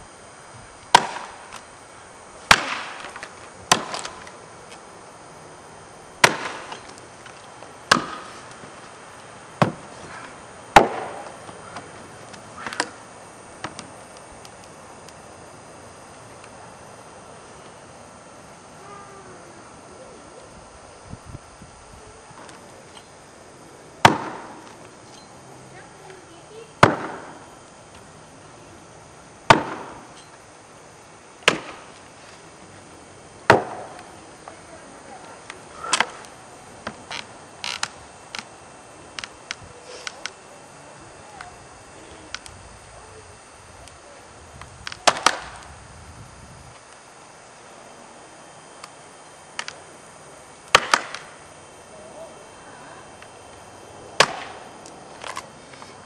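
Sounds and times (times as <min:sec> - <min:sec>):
axe chopping into wood: 0:00.9 - 0:01.4, 0:02.5 - 0:04.2, 0:06.2 - 0:06.8, 0:07.9 - 0:08.3, 0:10.7 - 0:11.3, 0:24.0 - 0:24.5, 0:26.8 - 0:27.3, 0:29.5 - 0:29.9, 0:31.4 - 0:31.8, 0:33.5 - 0:33.9, 0:45.0 - 0:45.4, 0:50.7 - 0:51.2, 0:54.2 - 0:54.6.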